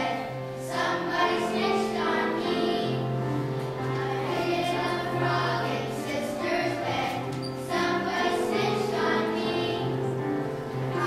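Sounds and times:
children's choir singing: 0.0s - 11.0s
low steady accompaniment: 0.0s - 11.0s.

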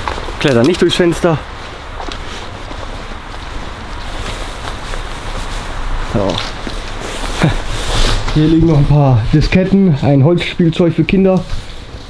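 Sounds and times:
footsteps and clothing rustle: 0.0s - 12.0s.

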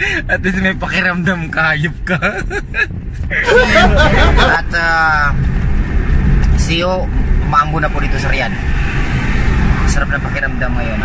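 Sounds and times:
car interior rumble: 0.0s - 11.0s
men laughing: 2.0s - 4.9s
men talking: 3.3s - 5.6s, 6.5s - 8.6s.

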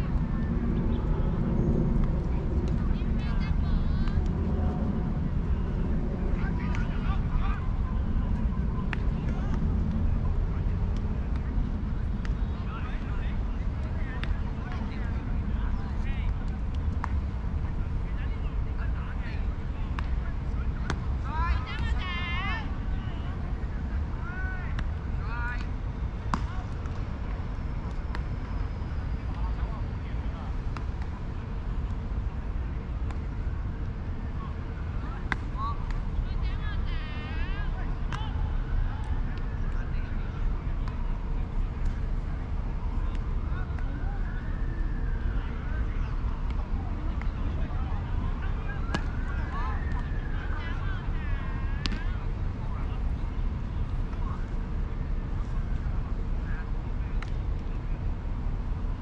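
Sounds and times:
steady low rumble: 0.0s - 59.0s
distant players shouting: 19.4s - 25.7s, 40.8s - 53.1s.

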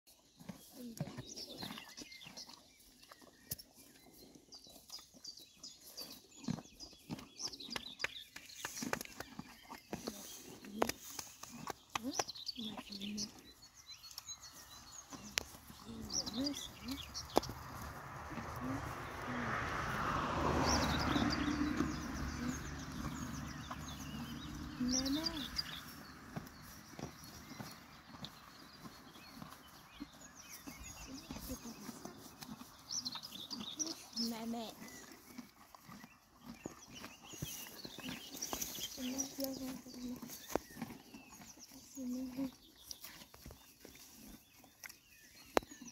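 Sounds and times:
horses chewing grass: 0.1s - 45.9s
small birds chirping: 0.1s - 45.9s.

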